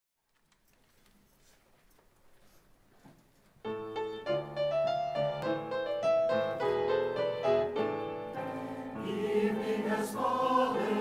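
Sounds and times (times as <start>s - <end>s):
piano melody: 3.6s - 11.0s
choir singing: 8.5s - 11.0s.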